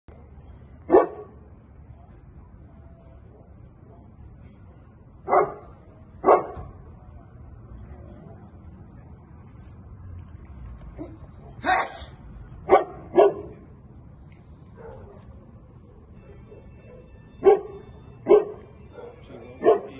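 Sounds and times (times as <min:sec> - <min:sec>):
dog barking: 0:00.9 - 0:01.4, 0:05.3 - 0:06.6, 0:12.7 - 0:13.6, 0:14.8 - 0:15.3, 0:16.3 - 0:19.9.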